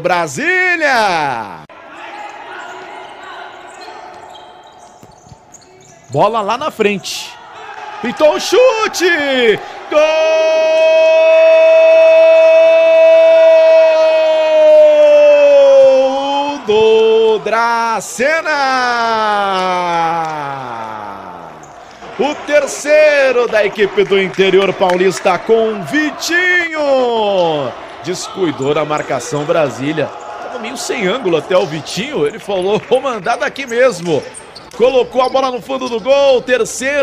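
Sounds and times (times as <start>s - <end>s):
players' voices: 0.0s - 37.0s
ball and shoes on hard court: 3.6s - 6.2s
man shouting long goal cry: 6.6s - 21.6s, 25.5s - 28.8s.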